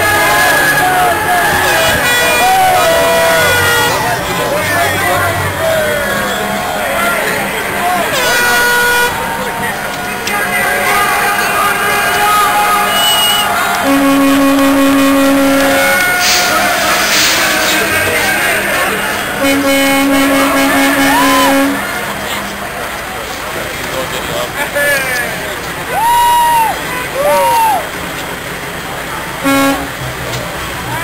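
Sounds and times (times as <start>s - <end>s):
horn notes: 0.0s - 22.6s, 29.4s - 30.2s
loud crowd noise: 0.0s - 31.0s.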